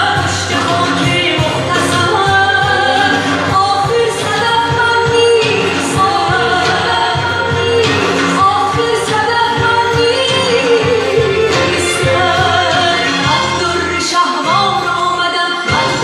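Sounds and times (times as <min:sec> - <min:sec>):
stage-show music with singing: 0:00.0 - 0:16.0.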